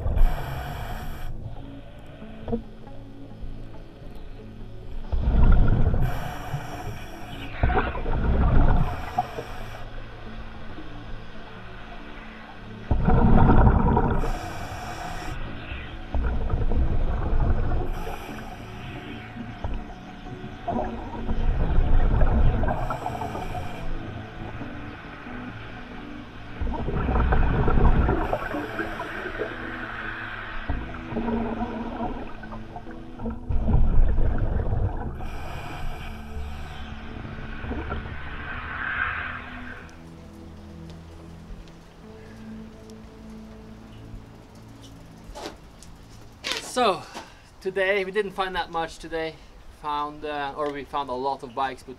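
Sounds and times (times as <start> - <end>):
regulator hiss: 0.1 - 2.3, 6.0 - 7.6, 8.8 - 10.0, 14.2 - 15.9, 17.9 - 19.4, 22.8 - 24.2
diver exhaling bubbles: 12.9 - 15.4.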